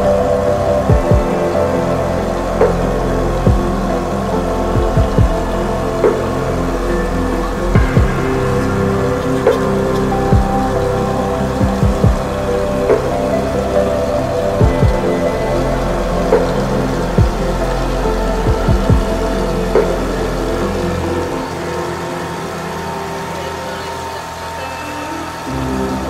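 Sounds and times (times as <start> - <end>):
short low thumps: 0.0 - 20.6
sustained slowly shifting music: 0.0 - 26.0.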